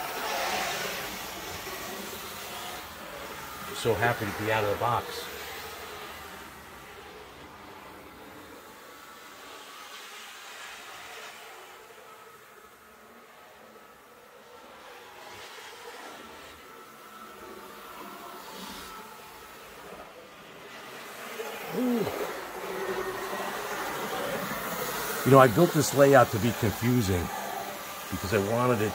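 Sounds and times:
model train motor whirring: 0:00.0 - 0:28.9.

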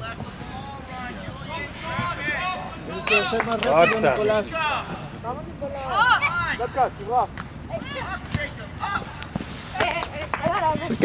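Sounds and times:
players shouting and calling: 0:00.0 - 0:11.0.

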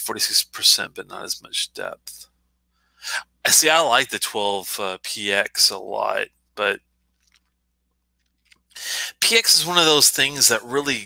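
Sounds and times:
breathy intake of breath: 0:08.8 - 0:09.2.

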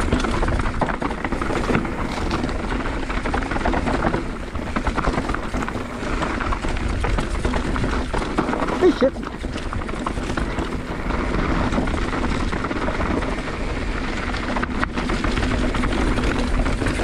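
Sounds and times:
bike rattling: 0:00.0 - 0:17.0
tyres crunching over dirt: 0:00.0 - 0:17.0.

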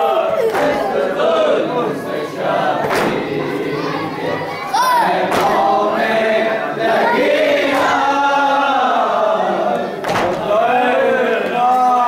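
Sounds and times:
men and boys chanting: 0:00.0 - 0:12.0
hand slapping chest: 0:00.5 - 0:00.9, 0:02.8 - 0:03.2.

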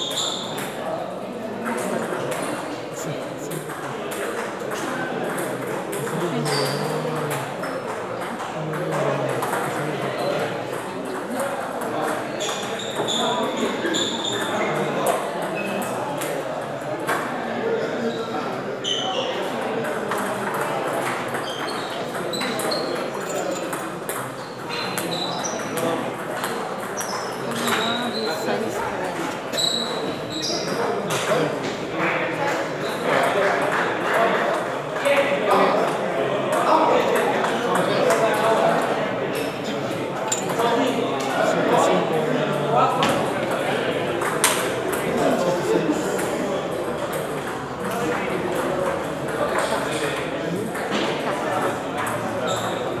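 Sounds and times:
murmur of many voices: 0:00.0 - 0:53.0.

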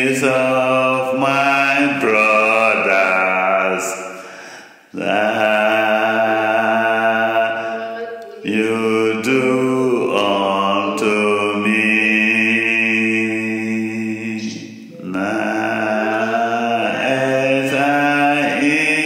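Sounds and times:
chanting in long held notes: 0:00.0 - 0:19.0.

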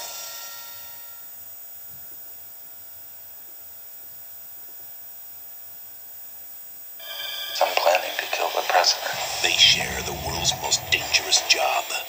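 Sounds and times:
tape hiss and hum: 0:09.1 - 0:11.6.

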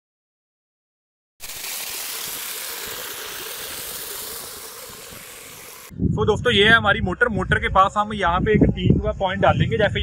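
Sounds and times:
water rushing down channel: 0:01.4 - 0:05.9.

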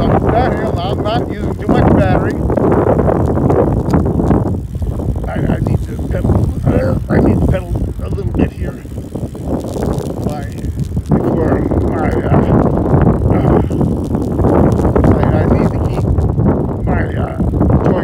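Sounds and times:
man's voice fragments: 0:00.0 - 0:02.5, 0:05.2 - 0:08.9, 0:10.1 - 0:12.7, 0:13.3 - 0:13.9, 0:15.0 - 0:16.1, 0:16.8 - 0:18.0
wind rushing over microphone: 0:00.0 - 0:18.0.

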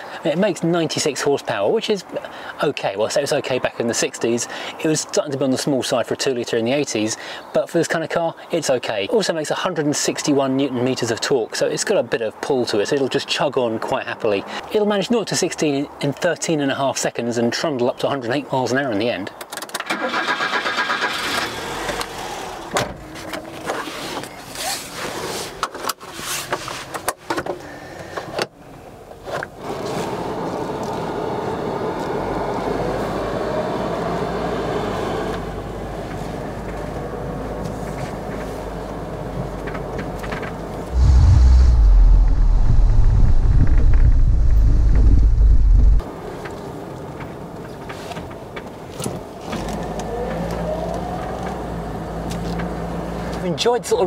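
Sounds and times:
car engine accelerating: 0:40.9 - 0:46.0
loud low rumble: 0:40.9 - 0:46.0.

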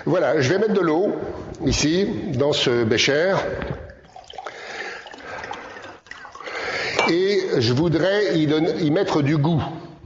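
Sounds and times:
water pouring into glass: 0:03.4 - 0:07.8.

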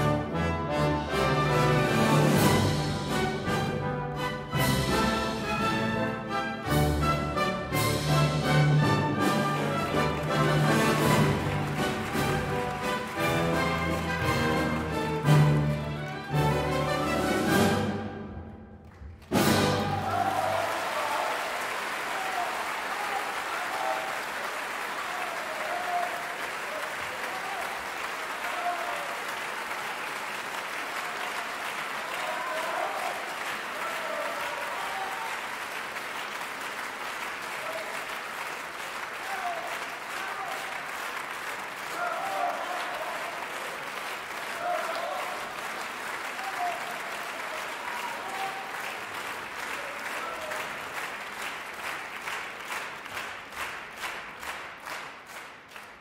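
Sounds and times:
audience applauding: 0:00.0 - 0:18.0, 0:18.8 - 0:56.0.

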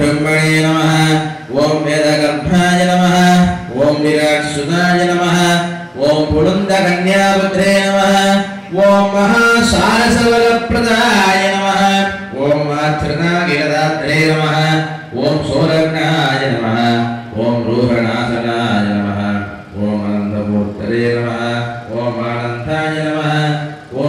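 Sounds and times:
man chanting: 0:00.0 - 0:24.0.

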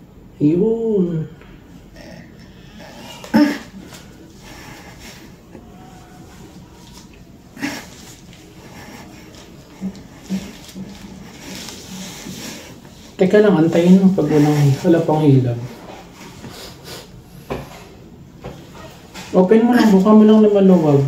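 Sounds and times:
woman breathing hard and straining: 0:01.8 - 0:13.2.

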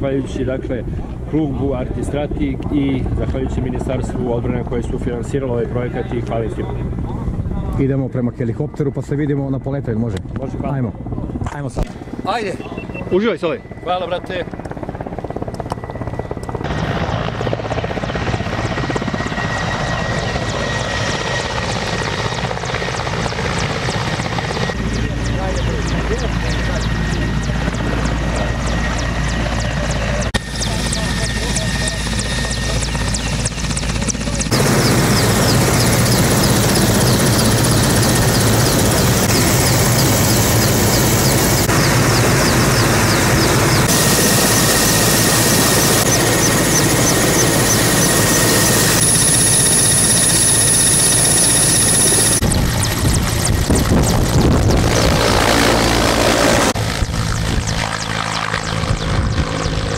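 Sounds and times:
helicopter engine and rotors: 0:00.0 - 0:59.9.

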